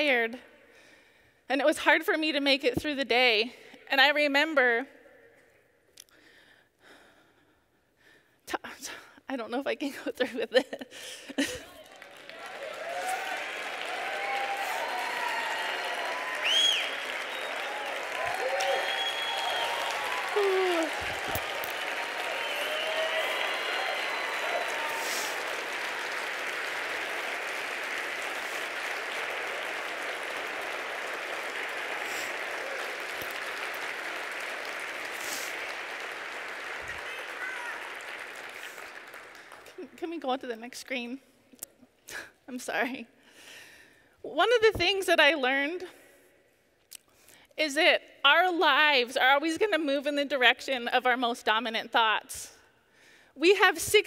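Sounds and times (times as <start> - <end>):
audience applauding: 11.4 - 39.9
people cheering and calling out: 12.4 - 33.3, 36.9 - 38.1.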